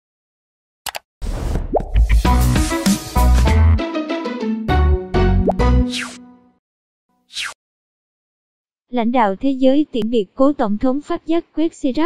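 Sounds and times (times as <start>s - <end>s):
cartoon pops: 5.4s - 6.2s.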